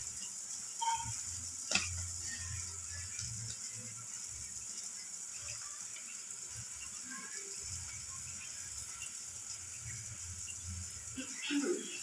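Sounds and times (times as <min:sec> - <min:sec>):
eggs sizzling in a pan: 0:00.0 - 0:12.0.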